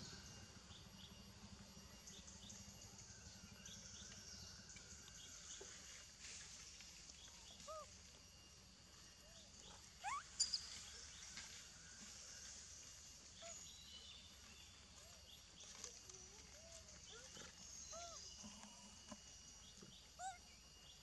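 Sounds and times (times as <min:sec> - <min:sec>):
animal calls: 0:07.5 - 0:08.0, 0:09.4 - 0:10.8, 0:15.0 - 0:19.1, 0:20.1 - 0:20.5.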